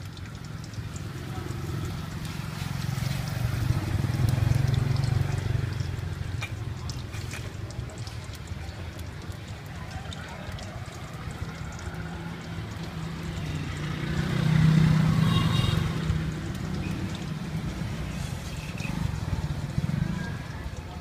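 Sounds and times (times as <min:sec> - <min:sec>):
vehicle engine passing by: 0:00.4 - 0:08.4, 0:10.5 - 0:21.0.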